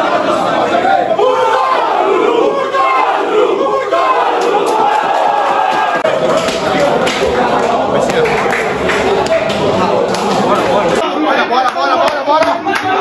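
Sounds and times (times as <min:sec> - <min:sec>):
group of men shouting: 0:00.0 - 0:07.6.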